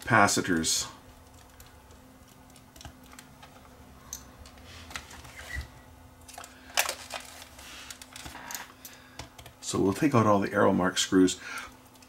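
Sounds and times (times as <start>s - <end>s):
hands handling plastic camcorder: 6.3s - 8.6s.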